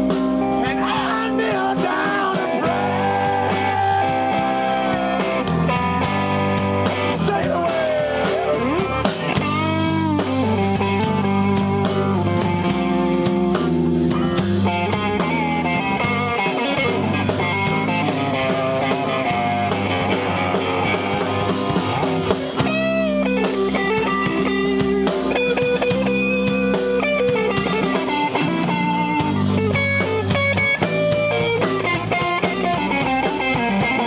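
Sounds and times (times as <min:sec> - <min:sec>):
bass line: 0:00.0 - 0:34.0
blues band playing: 0:00.0 - 0:34.0
electric guitar solo: 0:02.0 - 0:34.0.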